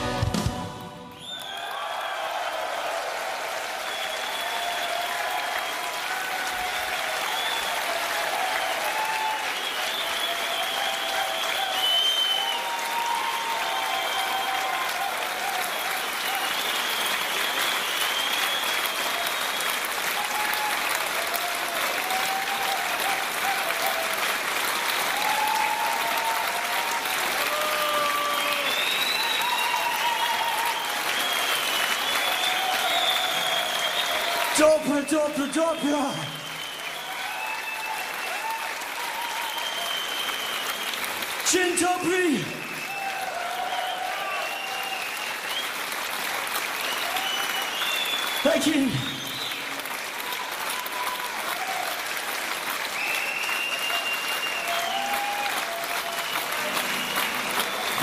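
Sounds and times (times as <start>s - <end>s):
audience cheering and shouting: 0.0s - 16.7s, 18.8s - 40.0s, 41.4s - 45.2s, 48.4s - 49.3s, 49.9s - 52.4s, 53.1s - 58.0s
audience clapping: 0.0s - 58.0s.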